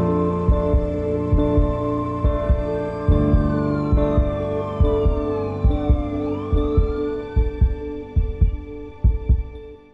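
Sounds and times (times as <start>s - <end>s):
held synth chord: 0.0s - 9.0s
low double thumps: 0.0s - 9.6s.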